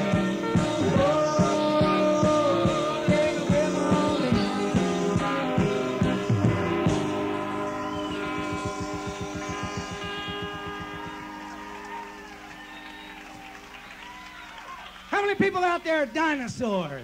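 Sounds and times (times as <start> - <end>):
rock band chord ringing out: 0.0 - 13.9
crowd noise: 1.7 - 17.0
whooping yells: 9.3 - 15.1.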